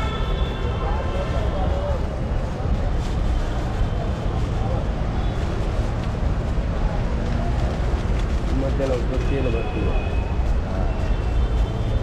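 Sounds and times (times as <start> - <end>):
street noise rumble: 0.0 - 12.0.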